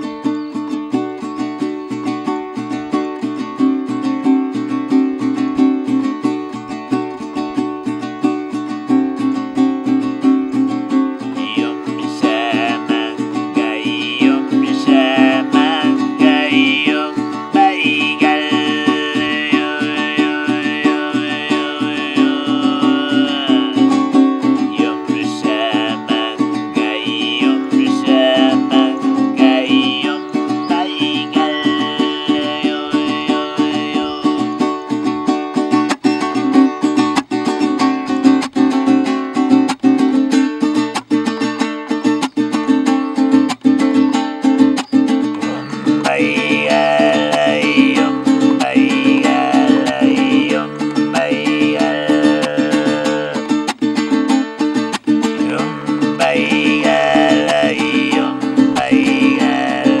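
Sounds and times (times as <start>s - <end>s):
strummed long-necked lute: 0.0s - 60.0s
overtone throat singing: 11.3s - 34.5s, 45.4s - 53.5s, 55.4s - 60.0s.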